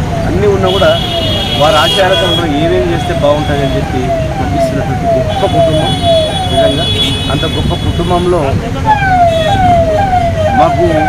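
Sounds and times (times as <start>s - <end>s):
background talk: 1.5s - 10.7s
siren falling tone: 2.8s - 6.7s, 8.9s - 11.0s.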